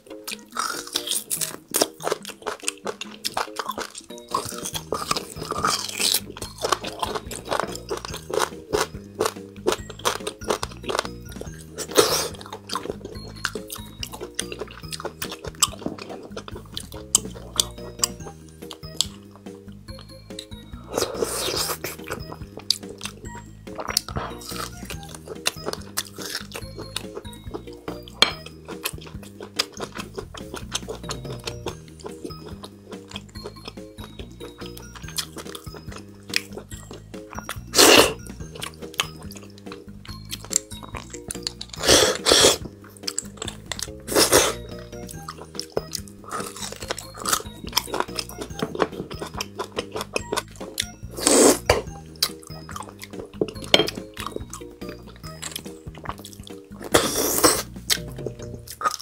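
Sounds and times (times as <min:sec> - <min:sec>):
soft background music: 0:00.0 - 0:59.0
wet eating clicks and smacks: 0:00.2 - 0:20.6, 0:21.4 - 0:59.0
slurping marrow from bone: 0:00.6 - 0:18.2, 0:20.9 - 0:23.1, 0:23.7 - 0:33.5, 0:35.2 - 0:39.8, 0:40.4 - 0:54.3, 0:55.5 - 0:59.0.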